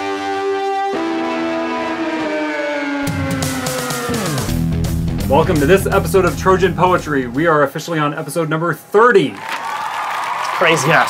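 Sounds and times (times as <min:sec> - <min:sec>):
held chord sliding down in pitch: 0:00.0 - 0:07.4.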